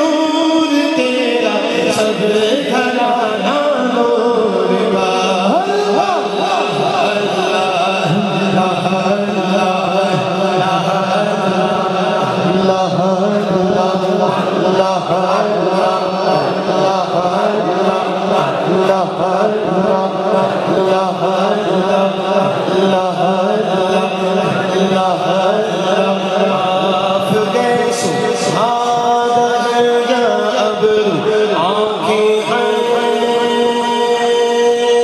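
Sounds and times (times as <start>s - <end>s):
male voices chanting: 0.0s - 35.0s.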